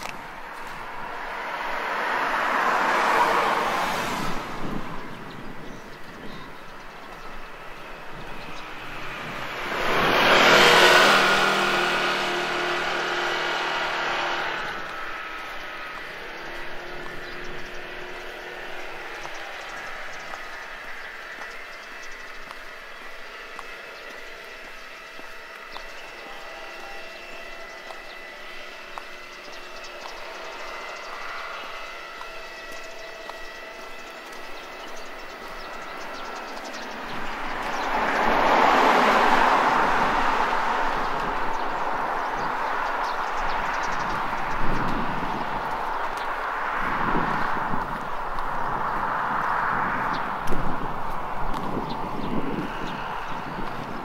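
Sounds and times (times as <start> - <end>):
car passing: 0.0 - 54.0
loud vehicle passing: 0.0 - 54.0
outdoor background: 0.0 - 54.0.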